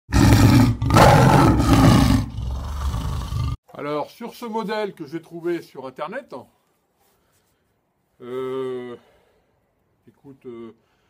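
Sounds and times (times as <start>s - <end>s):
tiger roaring: 0.1s - 3.6s.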